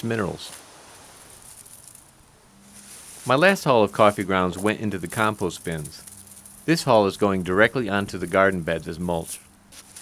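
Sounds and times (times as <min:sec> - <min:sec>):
low hum: 0:00.0 - 0:09.8
insect drone: 0:00.6 - 0:08.4.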